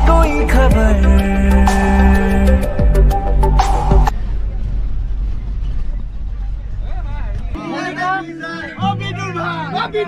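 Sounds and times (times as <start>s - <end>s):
bus engine rumble: 0.0s - 10.0s.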